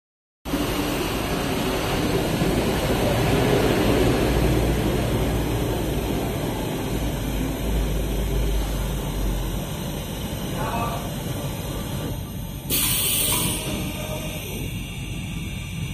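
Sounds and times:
low machinery hum: 0.5 - 15.9.

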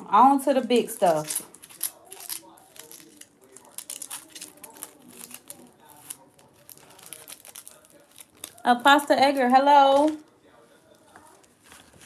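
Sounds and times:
plastic bag crinkling: 1.0 - 10.4.

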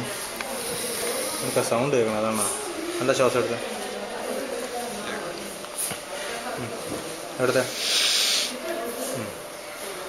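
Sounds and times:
person hissing shh: 7.7 - 8.6.

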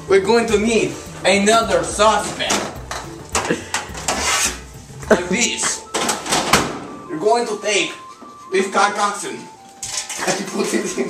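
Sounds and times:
metal scraping against metal: 2.2 - 5.1.

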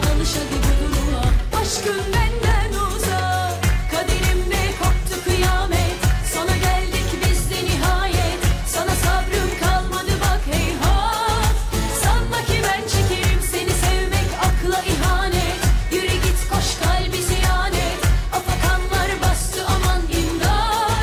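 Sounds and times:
pop accompaniment with steady beat: 0.0 - 21.0
woman singing into microphone: 0.0 - 21.0.

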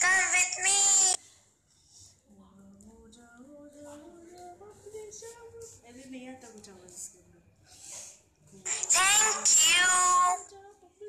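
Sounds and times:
high pitch-shifted cartoon voice: 8.8 - 10.4.

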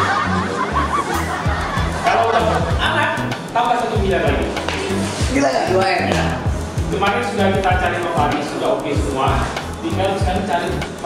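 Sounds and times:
people laughing: 0.0 - 4.5
background music with bass: 0.0 - 11.0.

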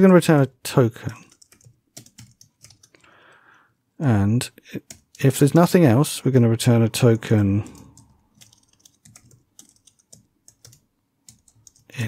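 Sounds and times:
keyboard typing: 1.0 - 3.2, 4.8 - 5.4, 7.6 - 12.0.

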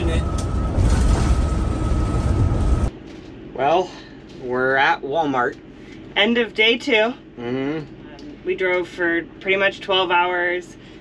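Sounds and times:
engine and road noise rumble: 0.0 - 6.2
thin steady whine: 0.0 - 11.0.

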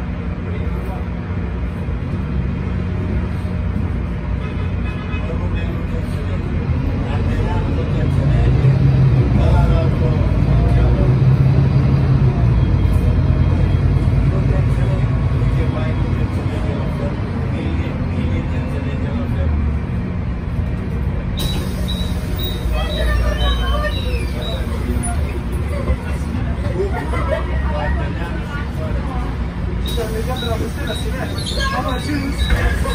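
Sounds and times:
bus engine drone: 0.0 - 32.9
road noise: 0.0 - 32.9.

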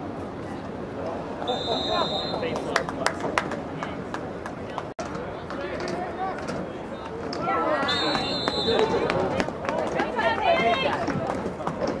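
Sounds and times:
referee's whistle blowing: 1.5 - 2.5, 7.8 - 9.0.

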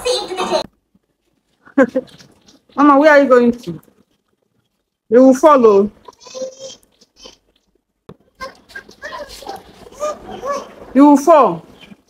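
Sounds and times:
adults talking: 5.8 - 12.0
small child vocalizing: 6.1 - 7.4, 8.4 - 10.8.

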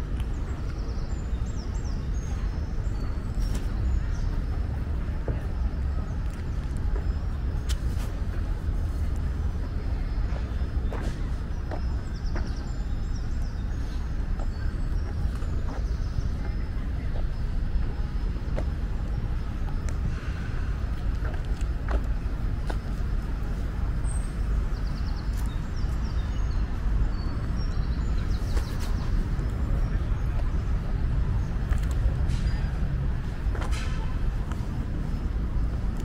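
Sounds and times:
low rumble of distant traffic: 0.0 - 36.0.

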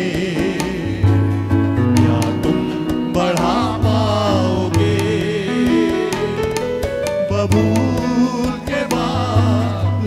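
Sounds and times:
man singing: 0.0 - 10.0
worship band playing: 0.0 - 10.0.

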